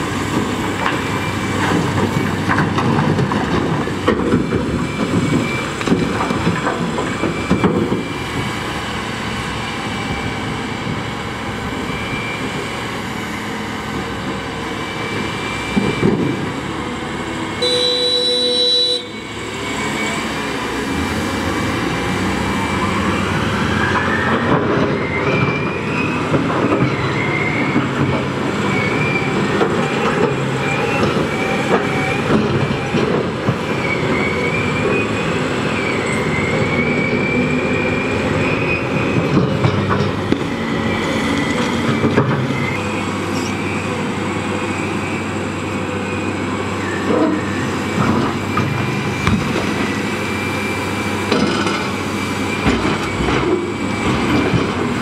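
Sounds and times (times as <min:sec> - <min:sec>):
heavy diesel machinery running: 0:00.0 - 0:55.0
truck engine whine: 0:00.0 - 0:55.0.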